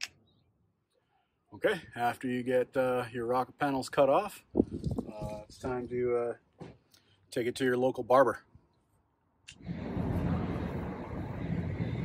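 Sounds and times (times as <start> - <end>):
wind on microphone: 4.5 - 5.9, 9.6 - 12.0
low even rumble: 9.6 - 12.0.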